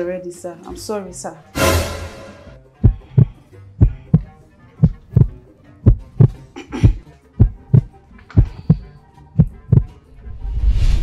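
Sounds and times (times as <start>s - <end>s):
heartbeat thumps: 2.8s - 10.0s
rising whoosh: 10.2s - 11.0s.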